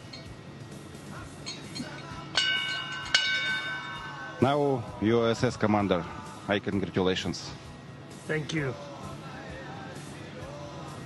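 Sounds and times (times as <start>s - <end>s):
ship's bell ringing: 0.0s - 0.4s, 1.4s - 5.0s.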